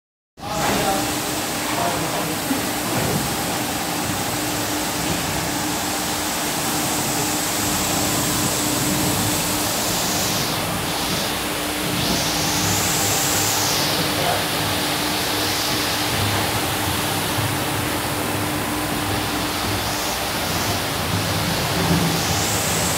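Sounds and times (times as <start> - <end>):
carpet washing machine scrubbing: 0.5 - 22.9.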